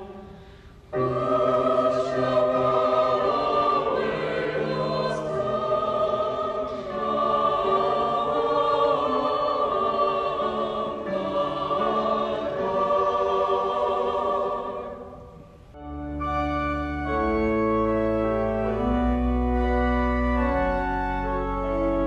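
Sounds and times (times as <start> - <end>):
mixed choir singing chords: 0.0 - 16.1.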